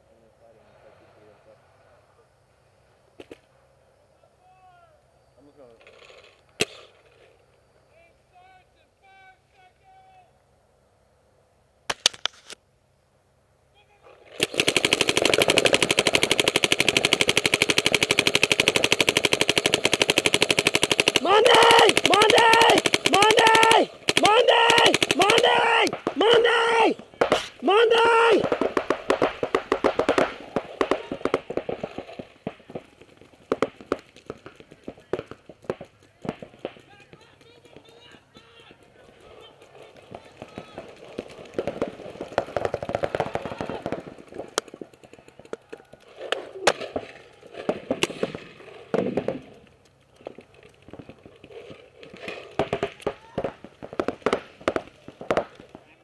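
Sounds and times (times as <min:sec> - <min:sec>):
paintball markers firing: 0:11.9 - 0:12.6, 0:14.4 - 0:26.5, 0:27.2 - 0:55.9
indistinct shouting voices: 0:21.2 - 0:28.5.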